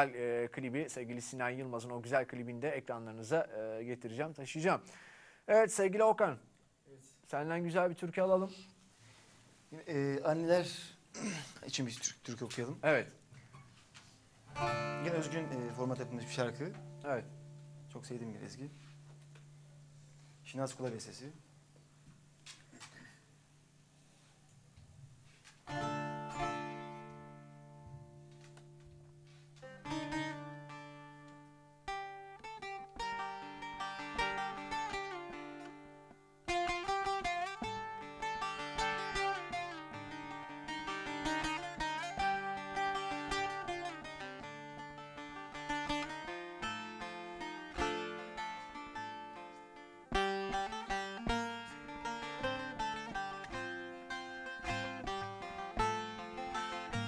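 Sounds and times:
plucked lute melody: 14.5s - 21.1s, 25.6s - 57.0s
long-necked lute strummed chords: 14.5s - 21.2s, 25.7s - 57.0s.

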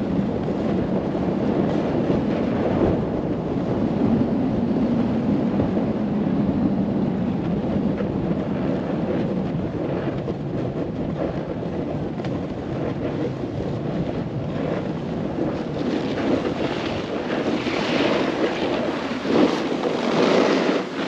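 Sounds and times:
snowboard sliding over snow: 0.0s - 21.0s
wind rushing over microphone: 0.0s - 21.0s.

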